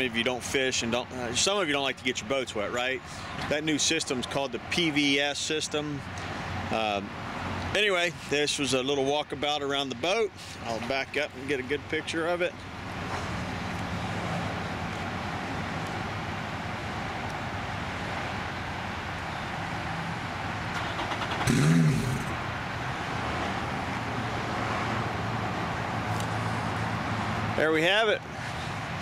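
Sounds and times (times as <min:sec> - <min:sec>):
road traffic noise: 0:00.0 - 0:29.0.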